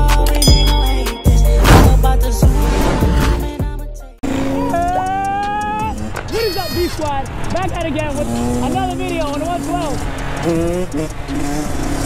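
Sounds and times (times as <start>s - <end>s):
intro music: 0.0s - 4.5s
dirt bike engine at high revs: 4.2s - 12.0s
man talking: 6.3s - 10.0s.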